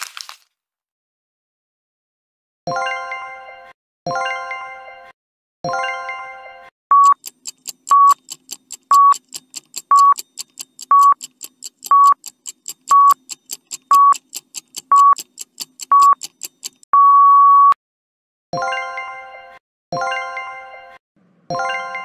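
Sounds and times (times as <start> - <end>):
short electronic beeps: 6.9 - 8.2, 8.9 - 9.2, 9.9 - 11.2, 11.9 - 12.2, 12.9 - 13.2, 13.9 - 14.2, 14.9 - 15.2, 15.9 - 17.8
rapid high ticking: 7.0 - 16.8.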